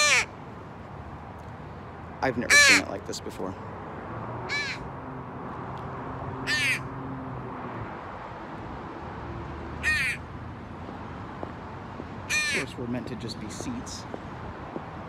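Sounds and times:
crow cawing: 0:00.0 - 0:00.3, 0:02.5 - 0:02.9, 0:04.5 - 0:04.9, 0:06.4 - 0:06.9, 0:09.8 - 0:10.3, 0:12.3 - 0:12.7.

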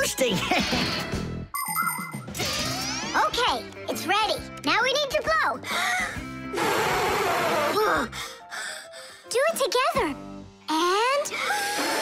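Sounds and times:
background music: 0:00.0 - 0:12.0
breath blown into soap film: 0:11.5 - 0:12.0.

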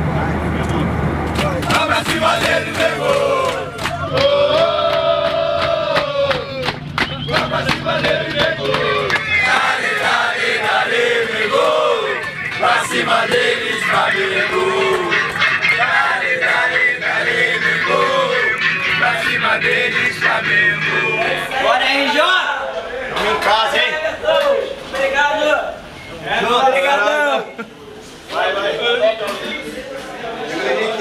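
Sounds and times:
sharp rhythmic hits: 0:01.3 - 0:21.6
men singing and shouting chant: 0:01.5 - 0:24.9.

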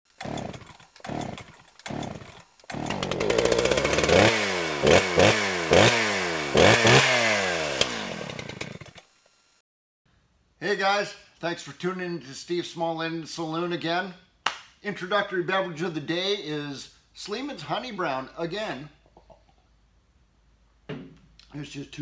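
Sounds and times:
small engine pull-starting: 0:00.1 - 0:09.6
small engine revving: 0:00.1 - 0:09.6.

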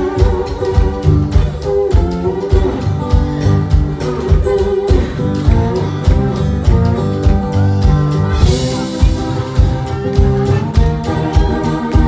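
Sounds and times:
acoustic guitar strumming: 0:00.0 - 0:12.0
drums keeping a steady beat: 0:00.0 - 0:12.0.

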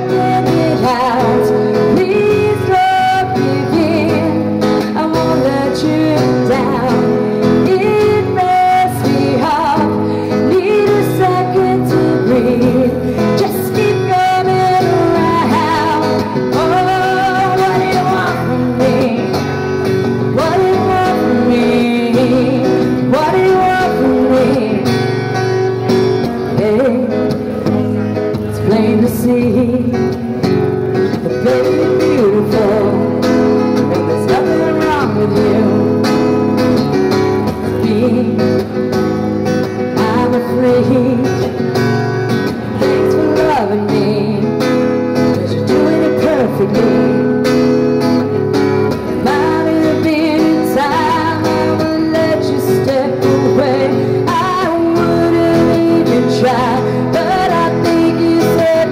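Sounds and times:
acoustic guitar strumming: 0:00.0 - 0:58.9
woman singing: 0:00.0 - 0:58.9.

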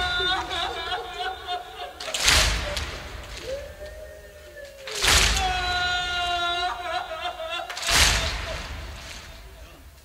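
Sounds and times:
hands slapping chests: 0:04.6 - 0:05.6.

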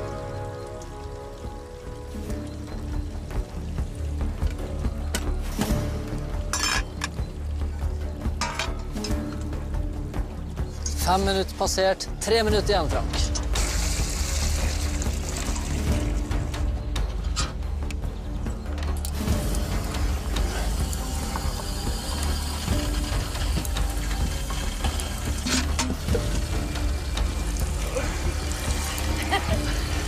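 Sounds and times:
background music: 0:00.0 - 0:30.0
milk running from spout: 0:13.5 - 0:16.2, 0:19.2 - 0:30.0.

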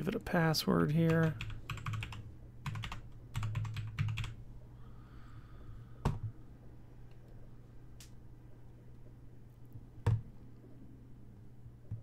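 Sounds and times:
steady low hum: 0:00.0 - 0:12.0
keyboard typing: 0:01.1 - 0:04.4.

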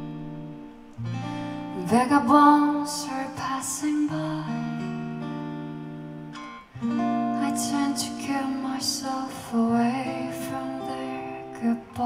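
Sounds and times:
acoustic guitar chords: 0:00.0 - 0:12.0
person singing a ballad: 0:01.1 - 0:05.3, 0:06.9 - 0:12.0.

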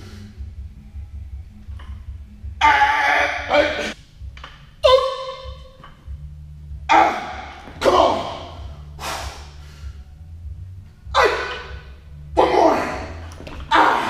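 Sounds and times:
low steady hum: 0:00.0 - 0:14.0.

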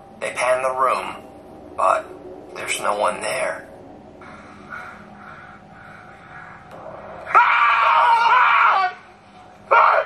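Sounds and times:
person screaming: 0:07.3 - 0:09.1.

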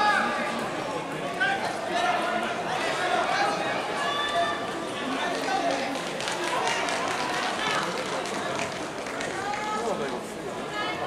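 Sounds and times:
general chatter: 0:00.0 - 0:11.0.

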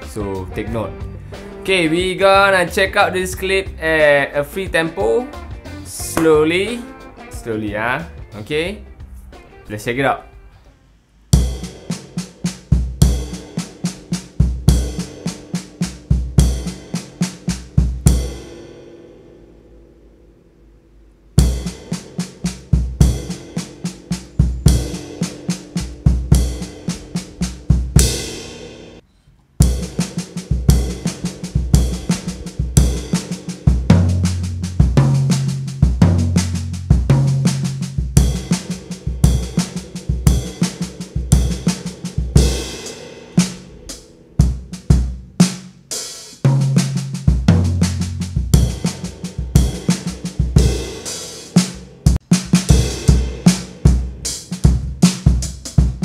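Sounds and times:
bass drum: 0:00.0 - 0:04.0, 0:04.6 - 0:06.9, 0:11.4 - 0:18.6, 0:21.4 - 0:28.9, 0:29.6 - 0:45.8, 0:46.5 - 0:56.0
snare drum: 0:04.6 - 0:07.0, 0:11.4 - 0:18.4, 0:29.6 - 0:43.7, 0:44.4 - 0:56.0
crash cymbal: 0:21.4 - 0:29.0, 0:29.6 - 0:47.2, 0:47.8 - 0:54.9.

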